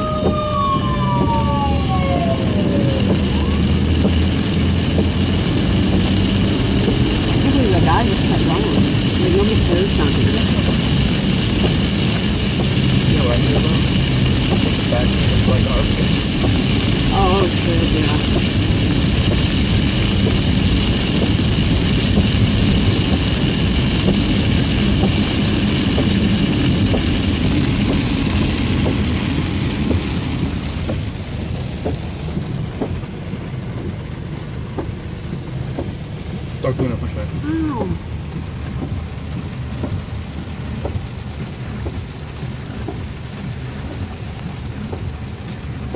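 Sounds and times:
car engine and road noise: 0.0 - 45.9
rain on a car: 0.0 - 45.9
tyres running through water: 0.0 - 45.9.

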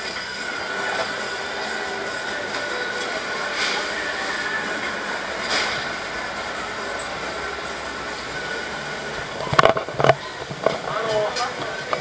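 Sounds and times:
mechanical din of funfair: 0.0 - 12.0.

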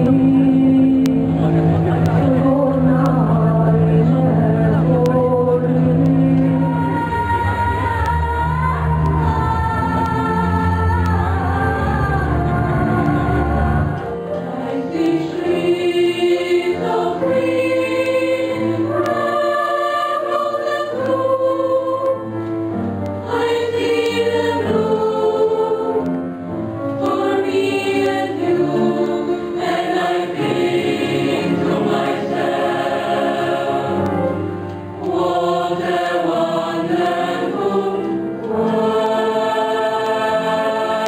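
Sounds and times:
mixed choir singing: 0.0 - 41.0.

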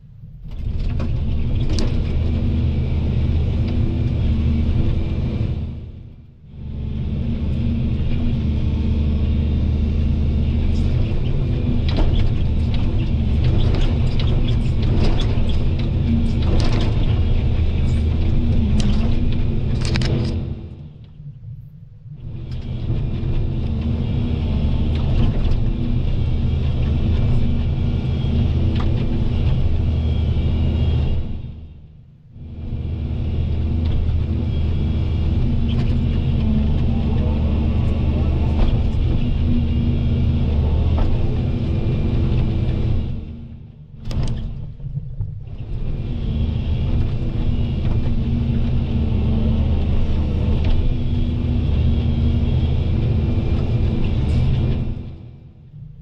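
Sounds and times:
excavator diesel engine running: 0.4 - 21.2, 22.2 - 55.6.

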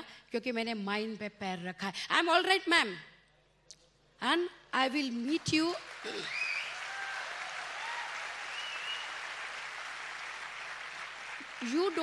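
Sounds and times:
audience applauding: 5.5 - 12.0.

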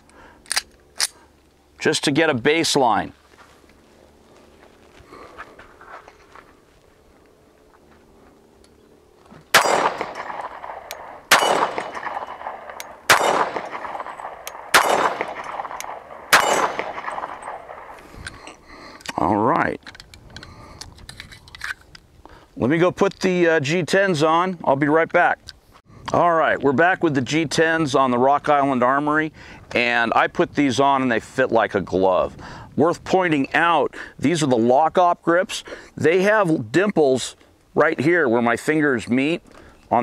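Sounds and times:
pistol metallic clicks: 0.0 - 1.2, 9.5 - 19.2.

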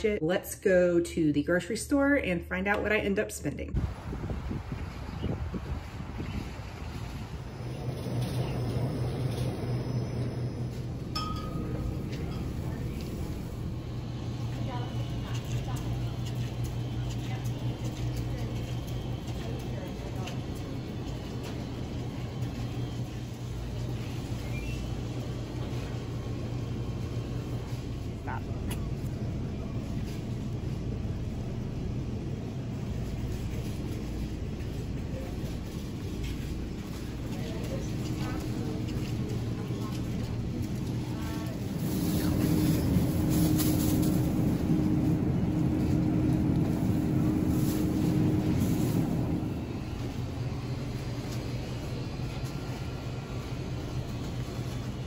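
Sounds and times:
steady low hum: 0.0 - 55.0
faint voices: 5.8 - 55.0.

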